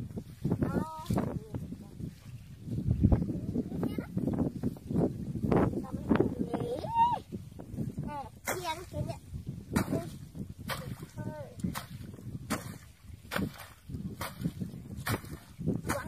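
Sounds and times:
digging tool chopping into mud: 8.4 - 8.9, 9.7 - 16.0.

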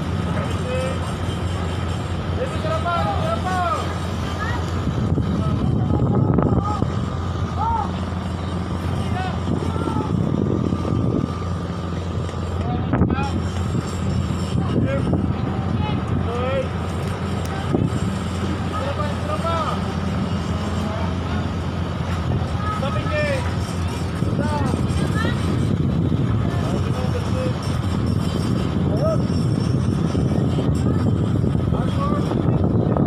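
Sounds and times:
distant voices: 0.0 - 33.0
ferry engines droning: 0.0 - 33.0.

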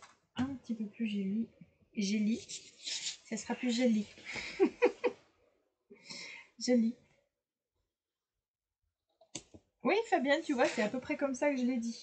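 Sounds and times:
woman speaking: 0.4 - 4.2, 6.6 - 7.0, 9.8 - 12.0.

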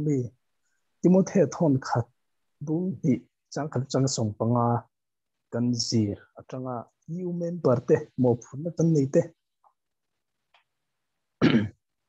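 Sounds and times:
person clearing throat: 11.4 - 11.8.

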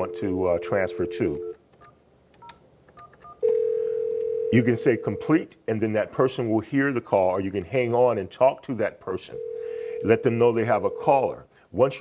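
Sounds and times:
telephone ringback tone: 0.0 - 1.6, 3.4 - 5.2, 9.4 - 11.1.

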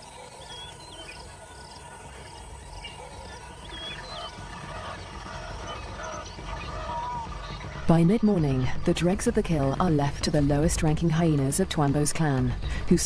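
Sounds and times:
whistled bird calls: 0.0 - 7.9.

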